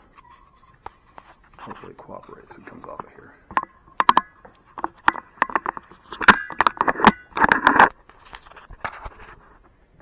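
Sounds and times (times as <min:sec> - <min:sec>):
camera handling clicks and rubs: 0:03.6 - 0:09.6.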